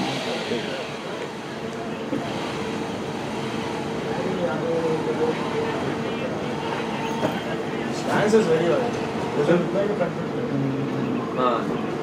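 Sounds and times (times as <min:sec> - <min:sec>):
indistinct distant voices: 0:00.0 - 0:12.0.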